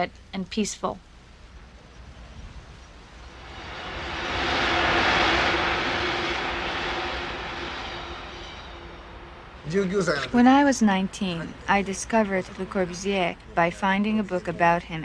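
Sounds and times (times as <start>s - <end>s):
steady low hum: 0.0s - 15.0s
electric train passing: 2.7s - 15.0s.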